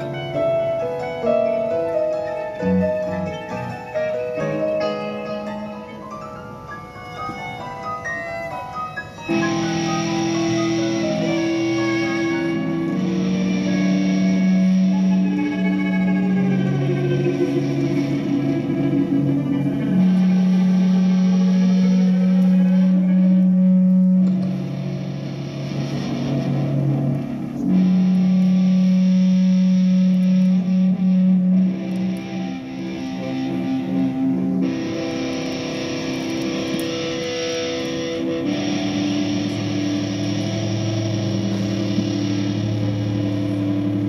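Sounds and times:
band holding a droning chord: 0.0 - 44.0
distorted electric guitar: 0.0 - 44.0
long held low notes: 9.3 - 44.0.

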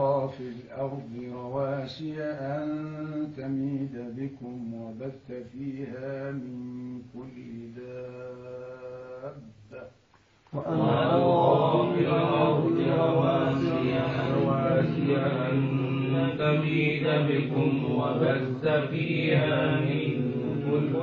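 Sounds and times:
man reciting melodically: 0.0 - 21.0.

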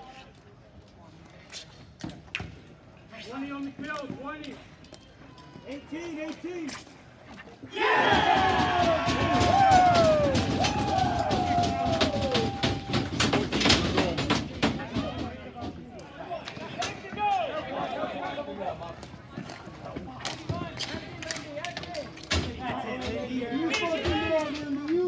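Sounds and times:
people shouting: 7.7 - 13.3.

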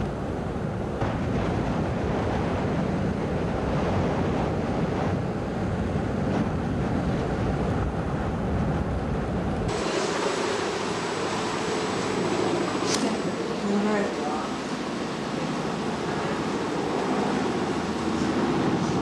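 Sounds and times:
storm surf breaking on beach: 0.0 - 19.0
wind buffeting microphone: 0.0 - 19.0.

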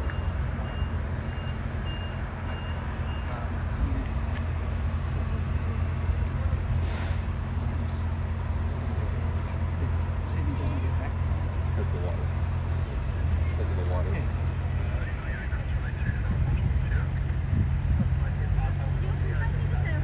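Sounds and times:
reversing beeper: 0.0 - 3.5
jet airliner rumble: 12.8 - 20.0.

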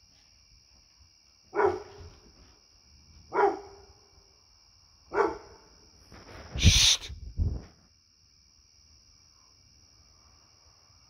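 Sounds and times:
dog barking: 1.5 - 2.1, 3.3 - 3.9, 5.1 - 5.7.

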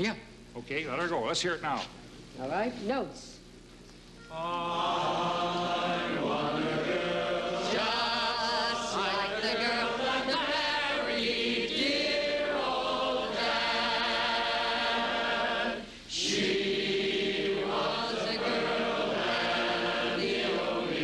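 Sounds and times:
audience singing barbershop chorus: 4.4 - 21.0.

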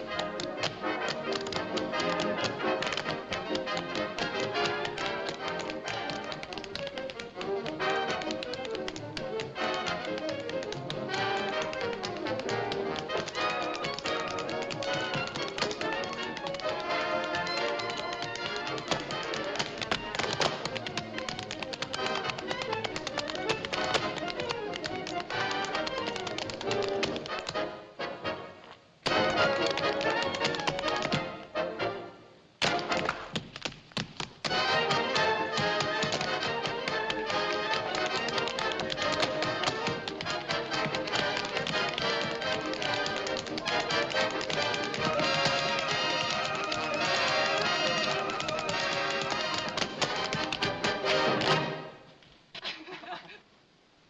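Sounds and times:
tap shoes on hard floor: 0.0 - 27.6, 29.1 - 31.3, 32.7 - 51.6
band music: 34.4 - 52.0.

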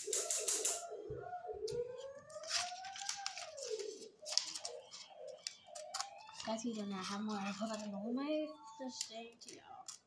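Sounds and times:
plastic food packaging crinkling: 2.3 - 8.1.

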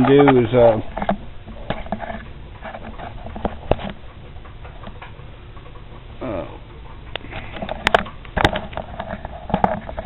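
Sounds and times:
handling knocks and clicks: 0.0 - 6.0, 6.9 - 10.0.

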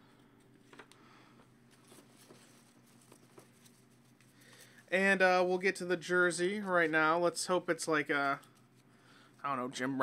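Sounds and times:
low steady hum: 0.0 - 10.0
man speaking: 9.4 - 10.0.

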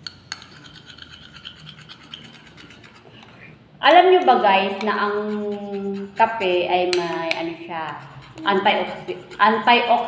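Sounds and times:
spoon clinking against a bowl: 0.0 - 2.8
spoon scraping in a ceramic bowl: 0.0 - 3.4, 4.0 - 10.0.

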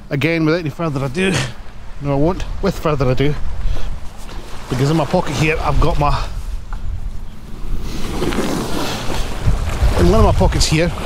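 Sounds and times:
wind buffeting microphone: 0.0 - 11.0
small waves on rocky shore: 0.9 - 6.6, 7.4 - 11.0.

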